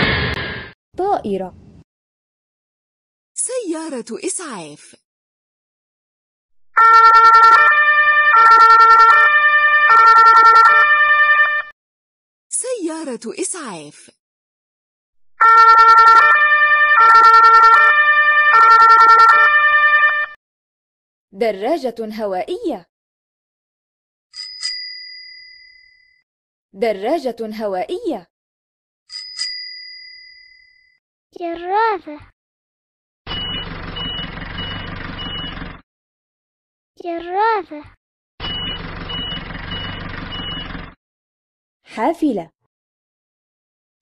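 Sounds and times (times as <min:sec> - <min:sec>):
ambulance two-tone siren: 0:06.7 - 0:11.8, 0:15.4 - 0:20.4, 0:33.3 - 0:35.8, 0:38.4 - 0:41.0
heavy diesel engine running: 0:33.3 - 0:35.8, 0:38.4 - 0:41.0
reversing alarm beeping: 0:33.3 - 0:35.8, 0:38.4 - 0:41.0.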